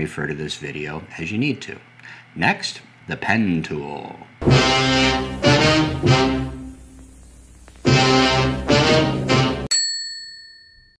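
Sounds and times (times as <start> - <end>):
brass-like chord: 4.4 - 6.9, 7.8 - 9.7
bright bell ding: 9.7 - 11.0.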